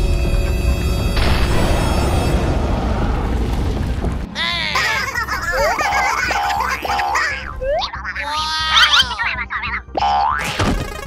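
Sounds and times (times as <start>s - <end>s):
background music: 5.4s - 11.0s.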